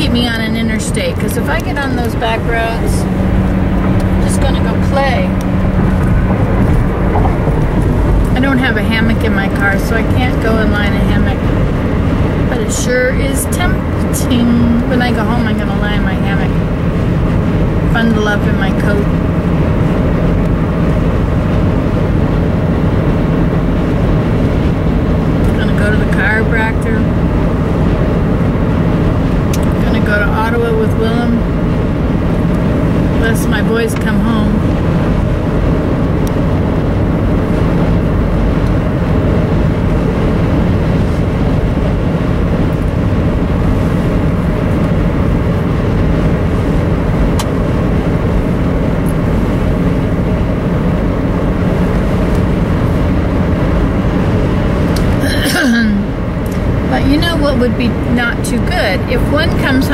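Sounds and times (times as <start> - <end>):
car cabin road and engine noise: 0.0 - 59.9
low hum: 0.0 - 59.9.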